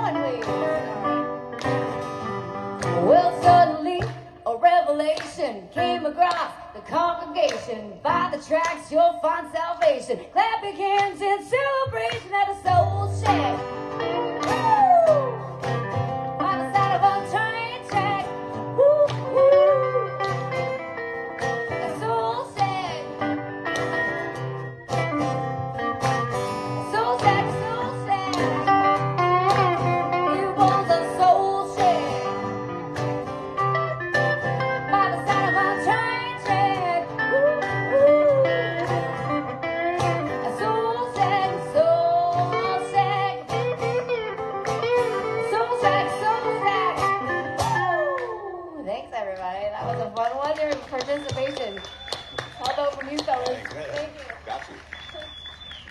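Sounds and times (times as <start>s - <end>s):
woman singing: 0.0s - 1.1s, 2.8s - 15.5s, 16.3s - 20.4s, 21.7s - 23.5s, 26.7s - 32.4s, 34.8s - 44.2s, 45.0s - 50.6s
acoustic guitars strummed: 11.9s - 18.8s, 19.4s - 48.0s.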